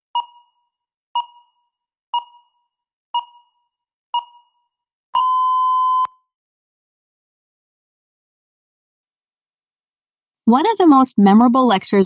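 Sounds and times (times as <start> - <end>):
timer beep: 0.2 - 2.6, 3.2 - 4.6, 5.2 - 6.2.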